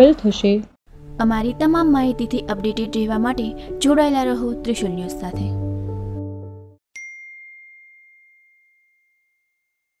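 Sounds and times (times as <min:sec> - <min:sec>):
bright ding: 0:07.0 - 0:09.5.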